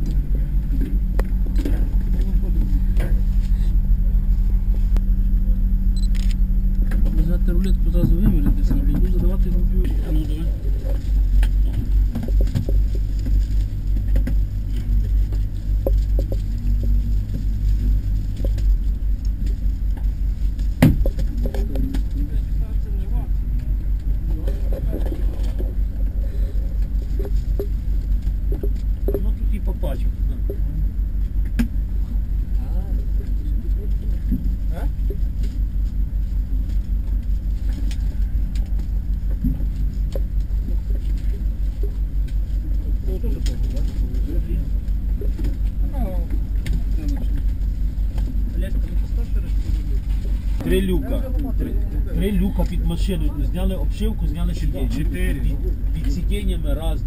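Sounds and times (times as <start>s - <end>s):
low pulsing rumble: 0.0s - 57.0s.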